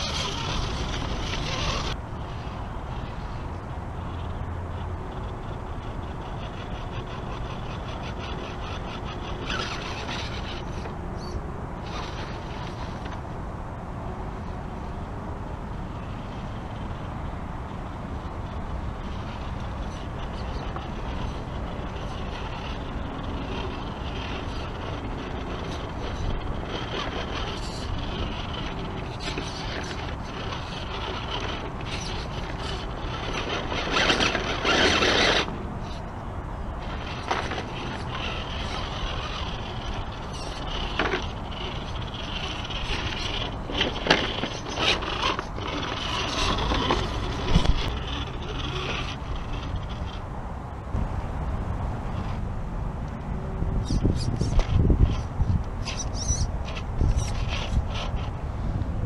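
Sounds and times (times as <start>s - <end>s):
tyres scraping on rock: 0.0s - 3.0s, 5.1s - 13.2s, 19.0s - 50.2s, 53.8s - 58.4s
toy car motor whirring: 0.0s - 13.2s, 18.1s - 36.1s, 36.7s - 50.3s, 53.8s - 58.8s.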